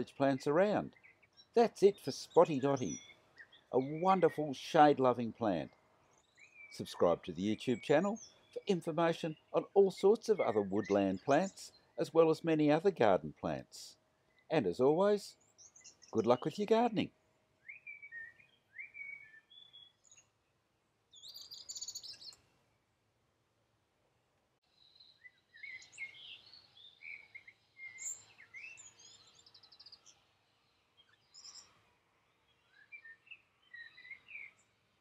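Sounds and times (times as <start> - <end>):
songbirds chirping: 0.0 - 35.0.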